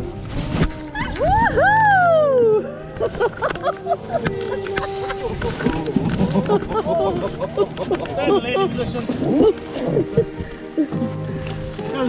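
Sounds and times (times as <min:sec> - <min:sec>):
excited voices cries and squeals: 0:00.9 - 0:11.0.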